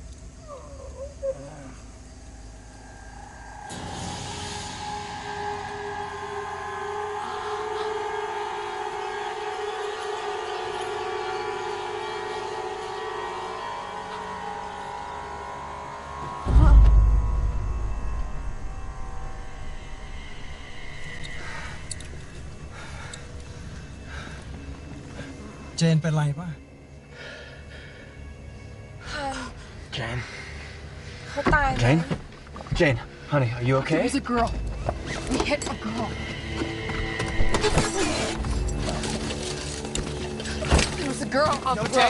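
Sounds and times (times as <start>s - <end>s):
low droning hum: 0.0s - 25.9s
low rumble: 16.3s - 24.9s
heavy thud: 16.5s - 18.8s.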